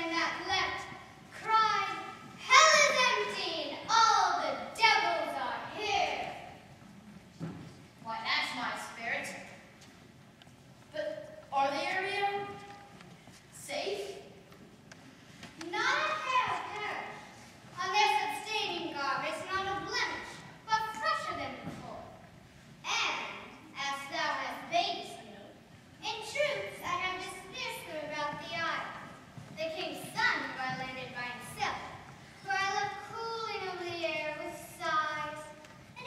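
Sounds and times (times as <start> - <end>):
child speaking: 0.0 - 6.6, 8.0 - 9.6, 10.9 - 12.9, 13.6 - 14.4, 15.6 - 22.2, 22.8 - 36.0.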